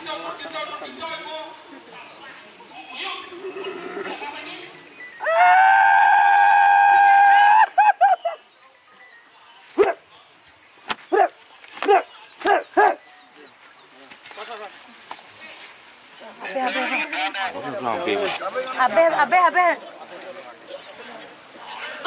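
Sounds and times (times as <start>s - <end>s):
shrill human shriek: 5.2s - 7.8s.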